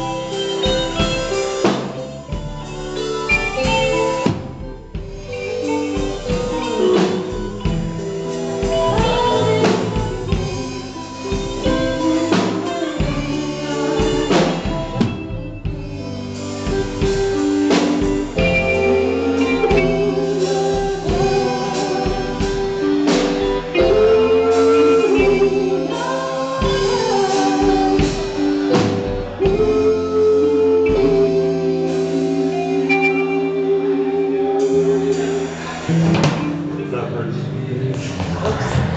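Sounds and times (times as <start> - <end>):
bass guitar: 0.0 - 38.9
drum kit: 0.0 - 38.9
electric guitar: 0.0 - 38.9
keyboard: 0.0 - 38.9
woman singing through microphone: 5.1 - 35.9.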